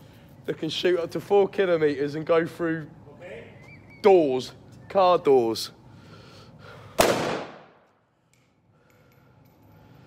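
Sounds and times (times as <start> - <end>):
rifle shot with echo: 7.0 - 7.8.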